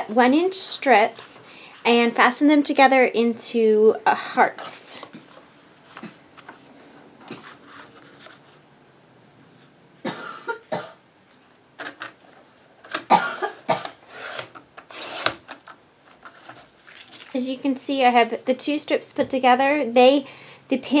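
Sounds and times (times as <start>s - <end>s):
paper trimmer blade rasping: 14.1s - 15.4s.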